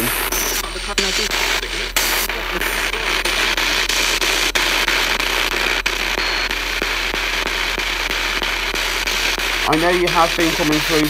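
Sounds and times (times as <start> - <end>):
radio static: 0.0 - 11.0.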